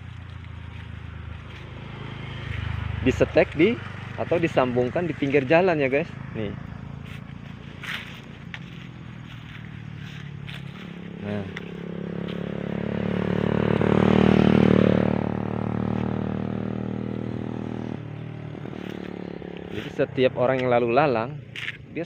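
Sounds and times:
vehicle engine passing: 0:00.0 - 0:21.7.

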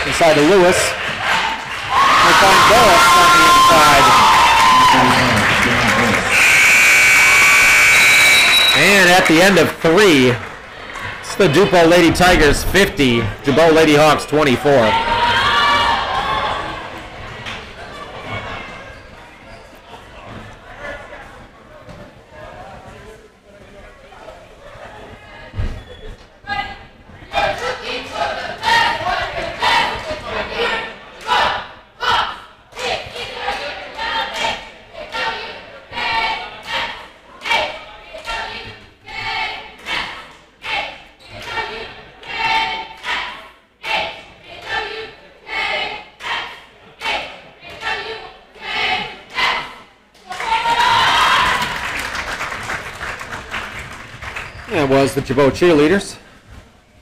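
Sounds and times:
crowd cheering: 0:00.0 - 0:12.0, 0:14.0 - 0:18.7, 0:50.3 - 0:54.8
cheerleaders chanting: 0:00.0 - 0:18.9, 0:26.5 - 0:52.0.

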